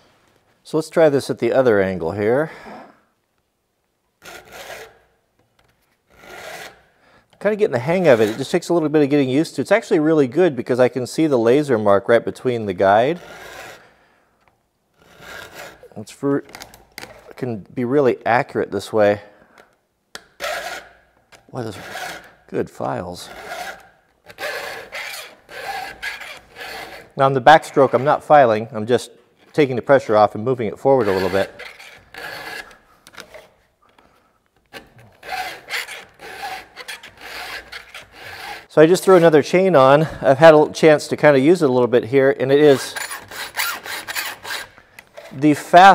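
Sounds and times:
file rasping on chainsaw chain: 0:04.2 - 0:05.0, 0:06.1 - 0:06.9, 0:07.8 - 0:08.6, 0:13.0 - 0:13.9, 0:15.0 - 0:15.9, 0:20.4 - 0:21.0, 0:21.7 - 0:22.4, 0:23.2 - 0:28.2, 0:30.9 - 0:32.8, 0:34.7 - 0:39.3, 0:42.6 - 0:45.5.

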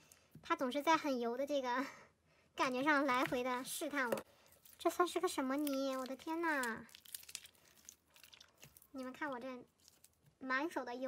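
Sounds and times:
person speaking: 0:02.6 - 0:07.0
slime crinkling and crackling: 0:02.8 - 0:10.3.

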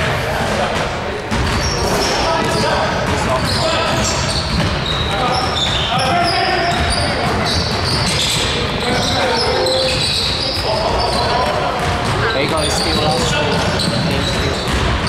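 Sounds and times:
players calling out: 0:00.0 - 0:15.0
sneakers squeaking: 0:00.5 - 0:15.0
basketball bouncing on wood floor: 0:01.3 - 0:15.0.

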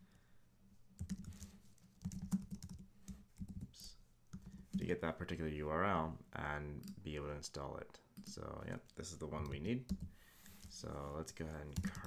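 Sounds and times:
computer keyboard typing: 0:01.0 - 0:03.7, 0:11.7 - 0:12.0.

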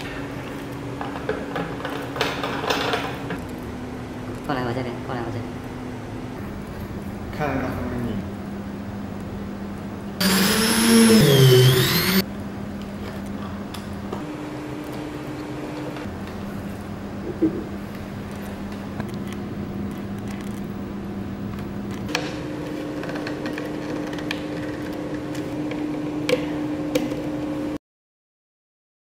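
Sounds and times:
mechanical hum: 0:00.0 - 0:27.8
cordless drill whining: 0:10.2 - 0:12.2.

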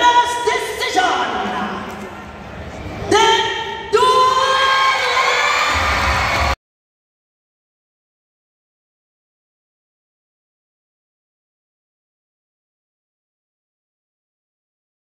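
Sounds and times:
crowd cheering: 0:04.2 - 0:06.6.

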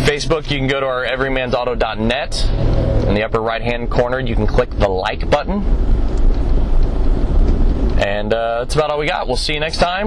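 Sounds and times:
vehicle road and engine noise: 0:00.0 - 0:10.0.

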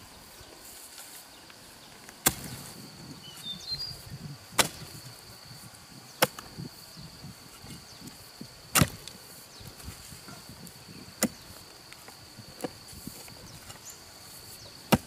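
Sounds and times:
hoe blade chopping ground: 0:02.2 - 0:02.8, 0:04.5 - 0:05.0, 0:08.7 - 0:09.2, 0:11.2 - 0:11.5
soft thuds of earth: 0:02.2 - 0:03.4, 0:04.5 - 0:05.1, 0:08.7 - 0:09.2, 0:11.2 - 0:11.5.

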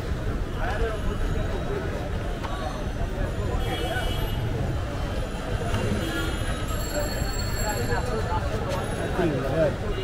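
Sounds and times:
crowd voices overlapping: 0:00.0 - 0:10.0.

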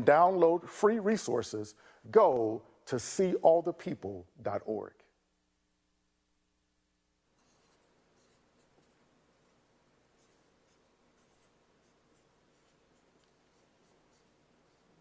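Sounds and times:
quiet room hiss: 0:00.0 - 0:15.0
marker scratching on whiteboard: 0:07.3 - 0:15.0.

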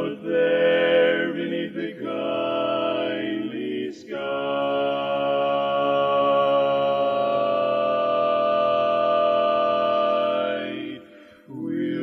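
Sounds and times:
male quartet singing a cappella: 0:00.0 - 0:12.0.

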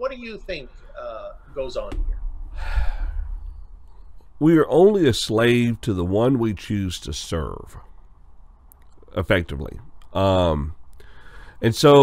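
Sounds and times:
man sighing: 0:02.6 - 0:03.5.

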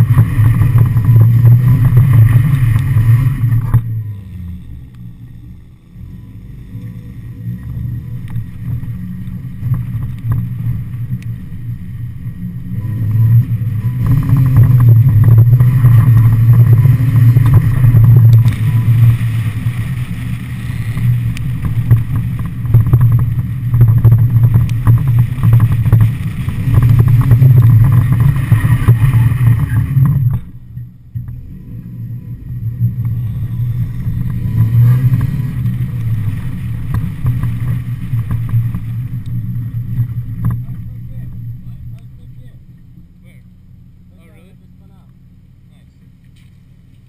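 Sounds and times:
car engine revving hard: 0:00.0 - 0:30.7, 0:31.3 - 0:43.5.

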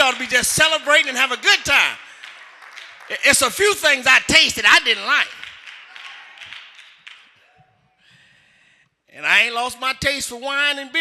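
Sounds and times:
scattered claps: 0:00.0 - 0:03.8, 0:04.8 - 0:08.2.

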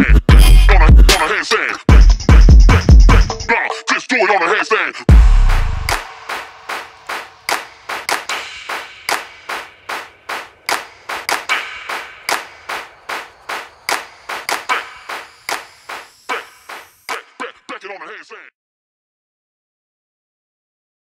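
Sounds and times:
electronic clap hits: 0:00.4 - 0:01.3, 0:05.1 - 0:17.4.

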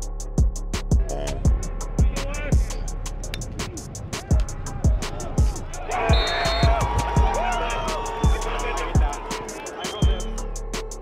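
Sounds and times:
deep kick drum: 0:00.0 - 0:02.8, 0:04.3 - 0:07.5
quick hi-hats: 0:00.0 - 0:11.0.

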